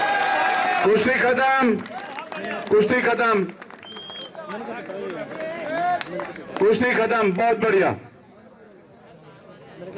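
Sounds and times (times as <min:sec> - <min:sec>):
crowd chatter: 0:00.0 - 0:09.9.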